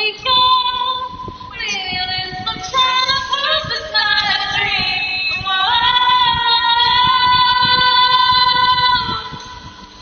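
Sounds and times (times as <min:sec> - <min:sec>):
woman singing a cappella: 0:00.0 - 0:09.7.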